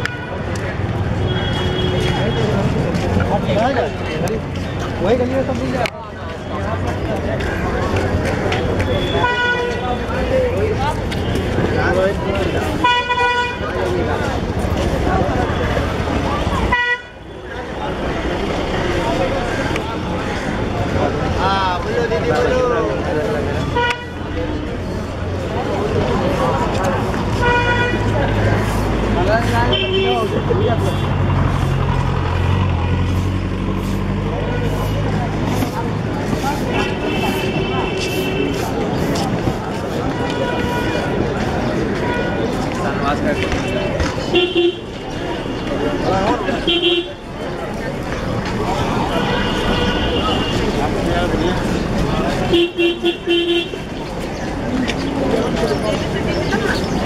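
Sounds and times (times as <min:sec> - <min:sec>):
street crowd chatter: 0:00.0 - 0:57.0
vehicle engine humming: 0:00.0 - 0:57.0.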